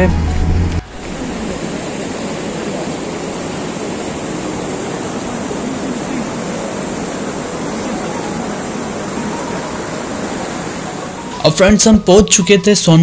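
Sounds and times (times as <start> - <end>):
river rushing over boulders: 0.9 - 13.0.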